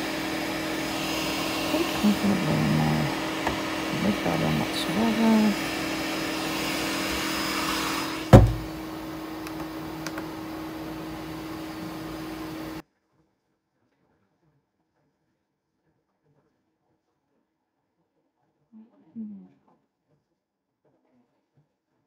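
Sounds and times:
printer fan hum: 0:00.0 - 0:12.8
sharp thump: 0:08.3 - 0:08.8.

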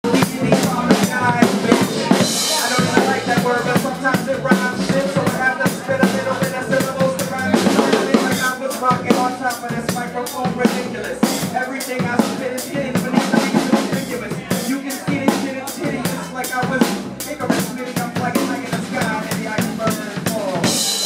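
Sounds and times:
drum kit playing a groove: 0:00.0 - 0:21.0
pitched instruments: 0:00.0 - 0:21.0.

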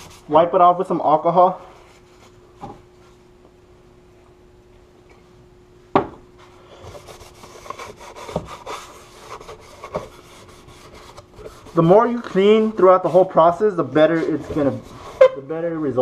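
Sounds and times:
faint steady hum: 0:00.0 - 0:16.0
rag scrubbing plastic: 0:06.9 - 0:15.3.

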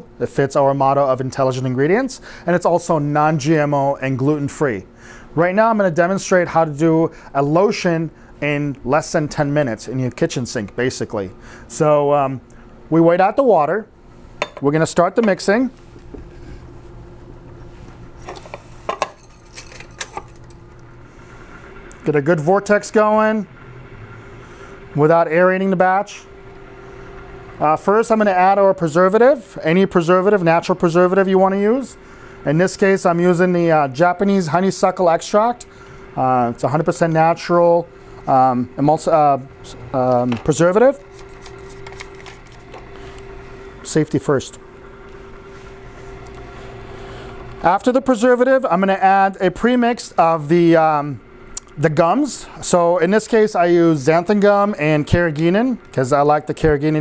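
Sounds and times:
overhead stirrer humming: 0:00.0 - 0:57.0.

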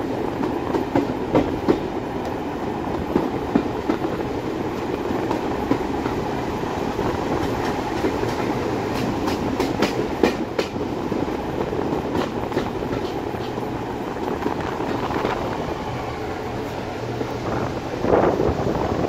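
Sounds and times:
train wheels rumbling on rail: 0:00.0 - 0:19.0.

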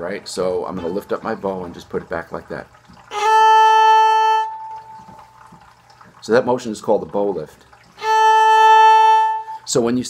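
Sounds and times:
viola bowing steady note: 0:03.1 - 0:05.4, 0:08.0 - 0:09.7.

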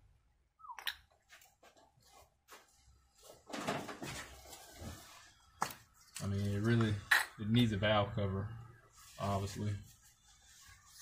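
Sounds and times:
paper towel rustling: 0:08.9 - 0:11.0.

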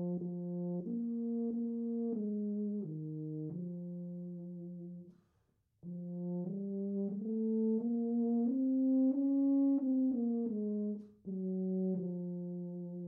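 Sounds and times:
tuba playing held notes: 0:00.0 - 0:05.1, 0:05.8 - 0:13.0.

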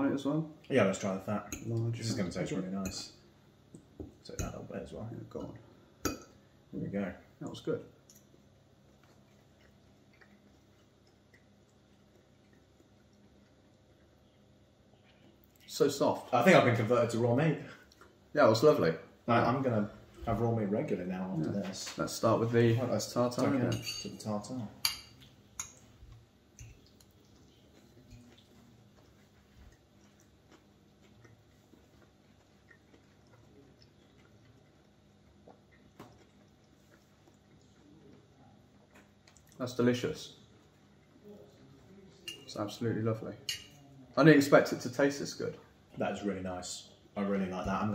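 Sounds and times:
low room hum: 0:00.0 - 0:47.9
quiet chewing: 0:07.9 - 0:15.8, 0:17.6 - 0:18.3, 0:25.1 - 0:39.6, 0:40.3 - 0:42.4.

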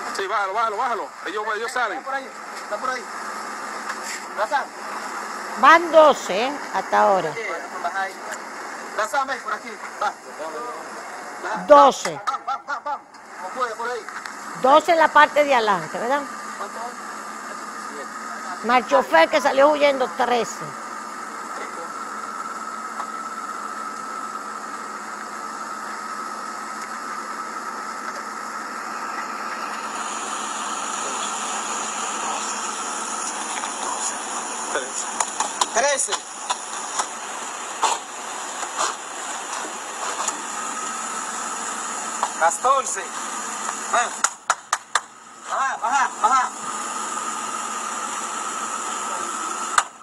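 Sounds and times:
car engine idling: 0:00.0 - 0:50.0
thin steady whine: 0:00.1 - 0:50.0
indistinct voices: 0:05.5 - 0:08.4, 0:09.5 - 0:12.4, 0:14.5 - 0:16.8, 0:18.0 - 0:20.8
person speaking: 0:05.6 - 0:07.4, 0:11.5 - 0:12.3, 0:14.6 - 0:16.3, 0:18.6 - 0:20.8.

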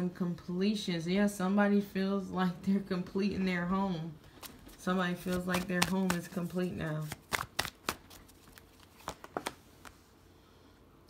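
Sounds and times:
cards being shuffled: 0:04.4 - 0:10.0.

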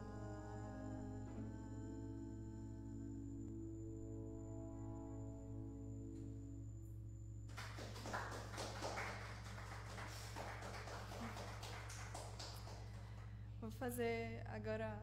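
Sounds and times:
sustained keyboard chord: 0:00.0 - 0:07.6
low electrical hum: 0:00.0 - 0:15.0
audience applauding: 0:07.5 - 0:13.2.

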